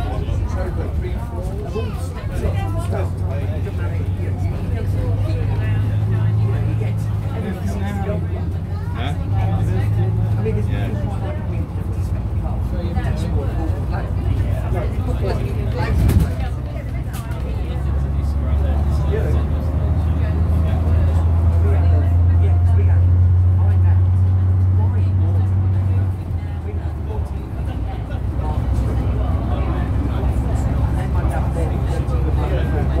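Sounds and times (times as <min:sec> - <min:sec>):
bus diesel engine drone: 0:00.0 - 0:33.0.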